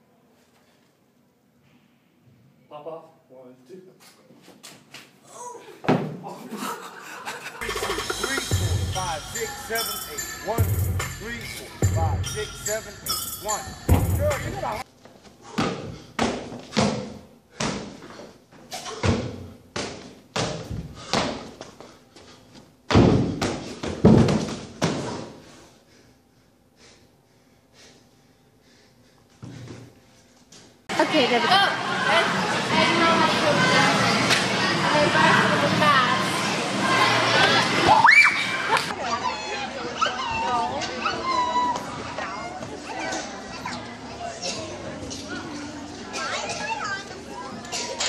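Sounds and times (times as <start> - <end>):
body falling onto gym floor: 5.8 - 6.2, 22.9 - 25.4
children calling out and squealing: 37.0 - 48.0.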